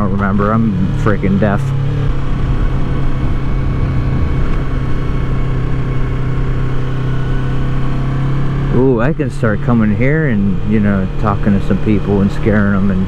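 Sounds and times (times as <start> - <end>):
motorcycle engine cruising: 0.0 - 13.0
wind rumble on microphone: 2.0 - 7.9.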